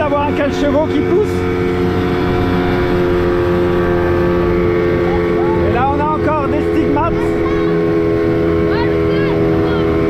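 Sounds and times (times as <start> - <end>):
outboard motor running: 0.0 - 10.0
water rushing past hull: 0.0 - 10.0.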